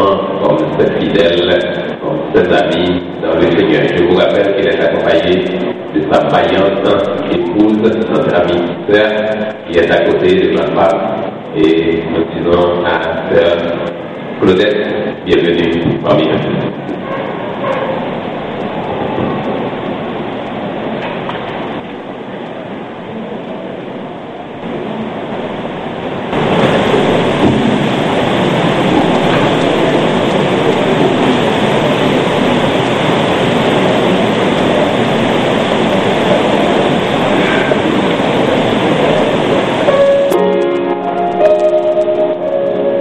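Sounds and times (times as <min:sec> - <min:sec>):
crowd of people murmuring: 0:34.0 - 0:43.0.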